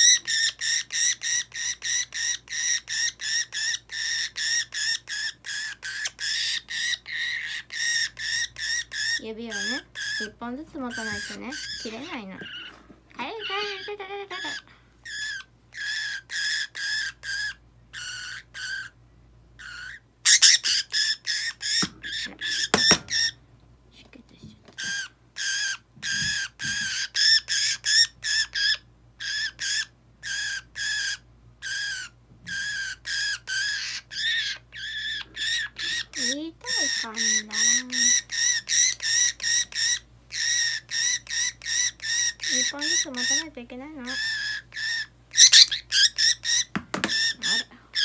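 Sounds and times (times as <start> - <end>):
budgerigar harsh alarm calls: 0.0 - 19.0, 19.6 - 23.4, 24.8 - 48.0.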